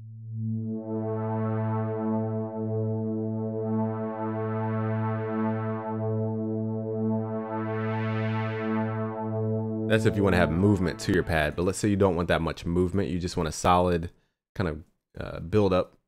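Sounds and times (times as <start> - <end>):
synthesizer pad low note: 0.0 - 12.0.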